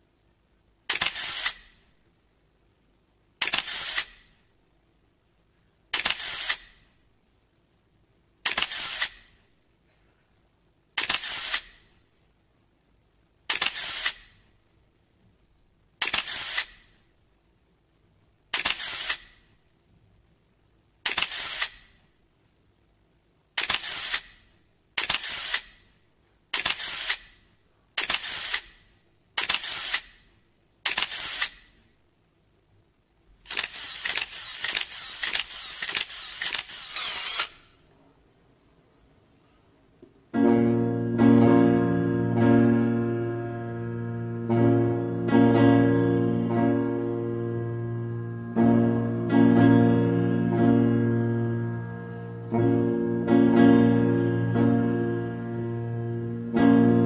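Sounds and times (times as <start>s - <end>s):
camera shutter clacks: 0.9s - 1.8s, 3.4s - 4.3s, 5.9s - 6.8s, 8.4s - 9.3s, 11.0s - 11.8s, 13.5s - 14.3s, 16.0s - 16.9s, 18.5s - 19.4s, 21.0s - 21.9s, 23.6s - 24.4s, 25.0s - 25.8s, 26.5s - 27.4s, 28.0s - 28.8s, 29.4s - 30.2s, 30.8s - 31.8s, 33.5s - 37.7s.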